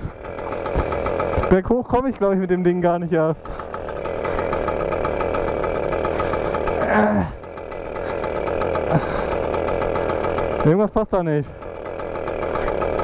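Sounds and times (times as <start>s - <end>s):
mini motorcycle engine running: 0.0s - 13.0s.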